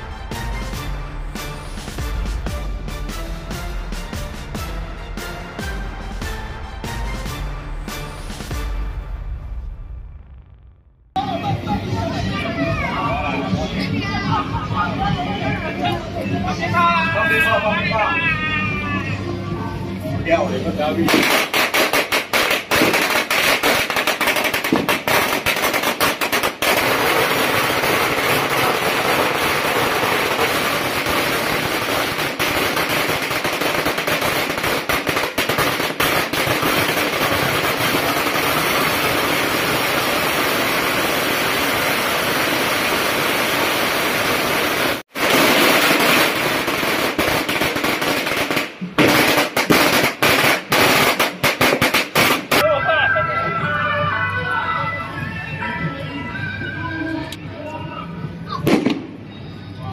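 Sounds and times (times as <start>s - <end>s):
firecrackers crackling: 20.8s - 52.8s, 58.5s - 59.3s.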